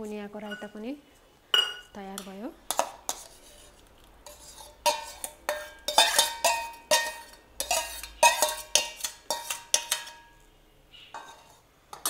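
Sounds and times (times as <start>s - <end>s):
metal spoon clinking on steel bowls: 0.4s - 0.8s, 1.5s - 10.5s, 11.1s - 12.0s.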